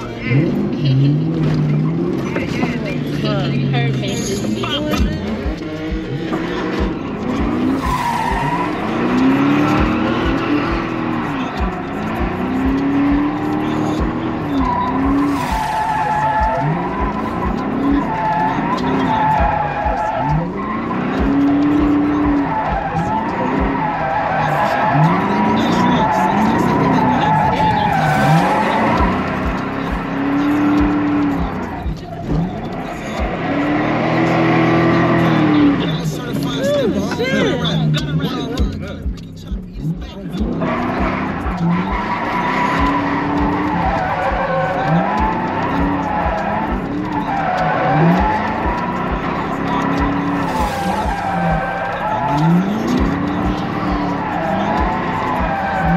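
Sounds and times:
car engine revving: 0.0 - 55.9
crowd voices: 0.0 - 55.9
tyres skidding and squealing: 0.0 - 55.9.

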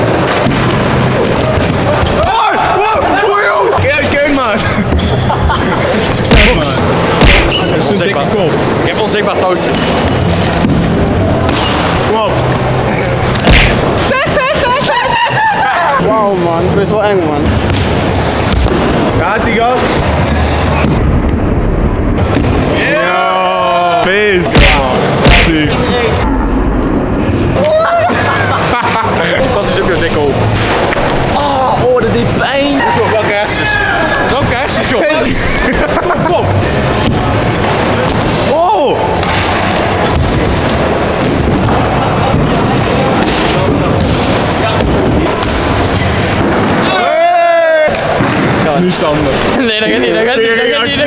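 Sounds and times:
heavy thumps: 6.2 - 7.7, 13.3 - 14.1, 24.4 - 25.8.

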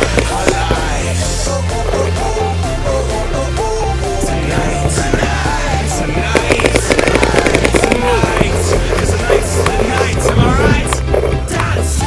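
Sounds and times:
music with bass beat: 0.0 - 12.0
rapid sharp clicks: 4.4 - 11.8.

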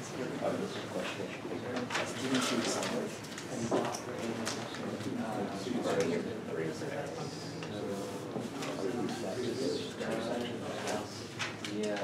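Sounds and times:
murmur of people talking: 0.0 - 12.0.

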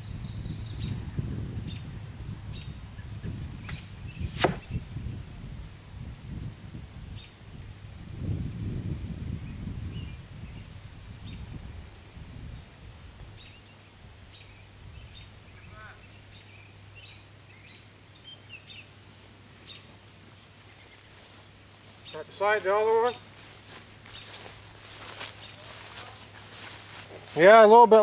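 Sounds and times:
low rumble on microphone: 0.0 - 13.2
faint bird chirps: 20.6 - 21.3.

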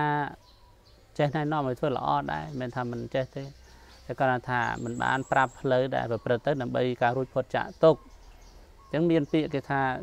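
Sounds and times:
man talking: 0.0 - 0.4, 1.2 - 8.1, 8.9 - 10.0.

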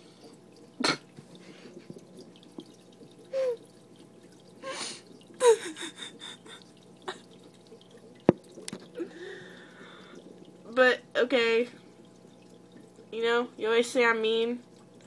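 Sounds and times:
faint fish tank water trickle: 0.0 - 15.0.

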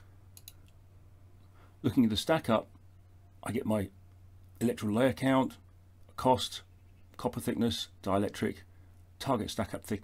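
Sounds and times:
computer mouse clicking: 0.3 - 0.8.

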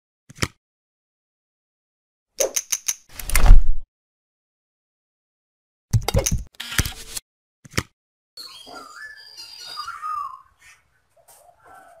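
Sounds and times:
quick sharp clicks: 2.4 - 3.6.

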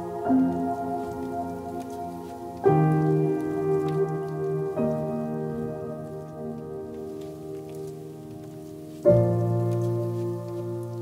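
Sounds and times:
calm piano chords: 0.0 - 11.0.

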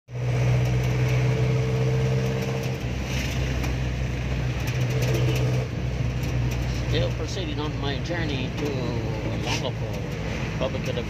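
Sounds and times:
diesel engine running: 0.1 - 11.0.

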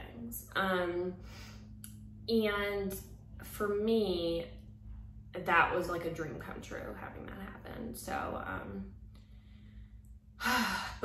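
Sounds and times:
woman sighing: 10.4 - 11.0.

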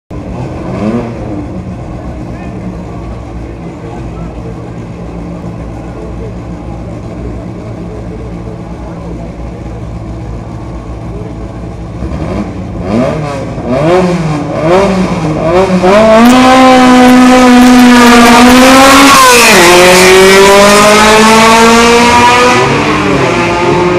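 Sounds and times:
car engine idling and revving: 0.1 - 23.9.

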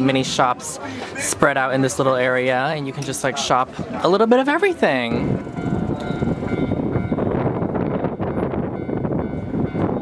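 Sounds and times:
train rumbling: 3.6 - 10.0.

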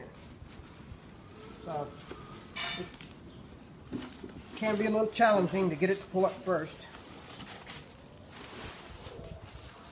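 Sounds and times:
plastic wrapping rustling: 0.0 - 9.9.

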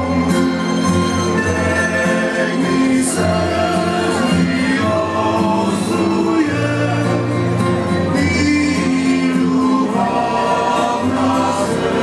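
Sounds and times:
double bass: 0.0 - 12.0
plucked string instruments: 0.0 - 12.0
men's vocal group singing: 1.4 - 12.0.

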